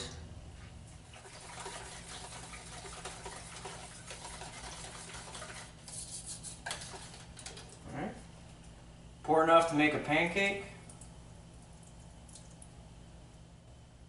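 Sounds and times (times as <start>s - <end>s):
whisk swishing batter in bowl: 1.2s - 7.6s.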